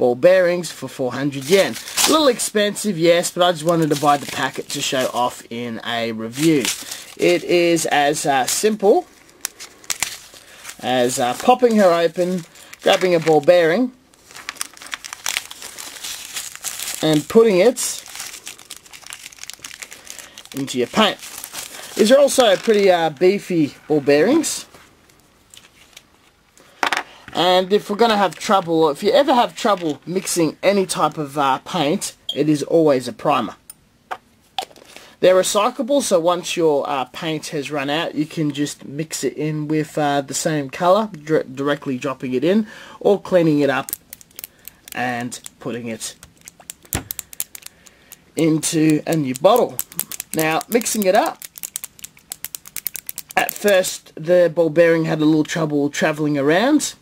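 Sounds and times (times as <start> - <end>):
plastic bag crinkling: 1.4 - 2.4, 3.4 - 5.4, 6.3 - 26.4, 27.8 - 31.3, 43.6 - 53.9.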